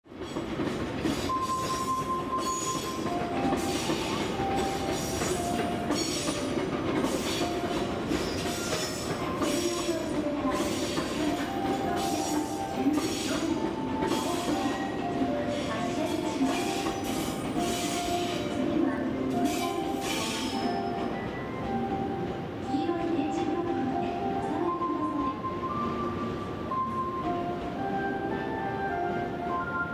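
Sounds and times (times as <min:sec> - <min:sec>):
train rumble: 0:00.1 - 0:29.9.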